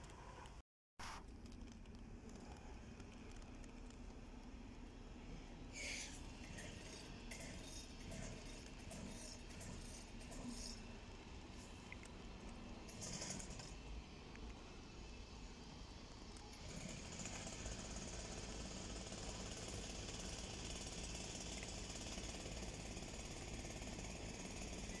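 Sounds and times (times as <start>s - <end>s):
low outdoor rumble: 0.0s - 17.2s.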